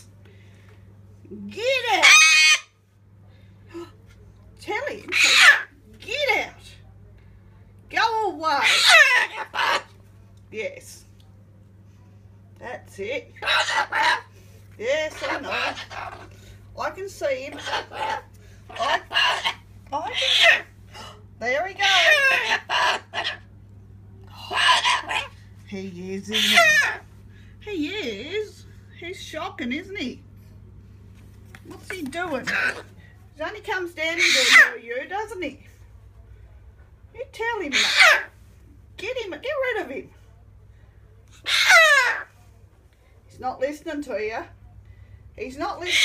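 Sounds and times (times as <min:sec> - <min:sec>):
cockatoo talking and squawking: 0:01.5 - 0:02.8, 0:04.6 - 0:06.8, 0:07.9 - 0:10.0, 0:13.0 - 0:23.6, 0:24.2 - 0:30.2, 0:31.6 - 0:35.7, 0:37.2 - 0:40.1, 0:41.2 - 0:42.4, 0:45.4 - 0:46.0
parrot harsh screech: 0:02.0 - 0:02.8, 0:05.1 - 0:05.7, 0:08.6 - 0:09.9, 0:13.4 - 0:14.3, 0:15.1 - 0:16.2, 0:17.5 - 0:20.7, 0:21.8 - 0:23.4, 0:24.4 - 0:25.3, 0:26.4 - 0:27.0, 0:34.2 - 0:34.8, 0:37.7 - 0:38.3, 0:41.4 - 0:42.3.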